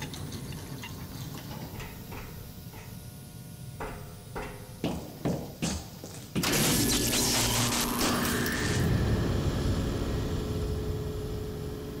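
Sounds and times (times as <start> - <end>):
low mechanical rumble: 7.2 - 12.0.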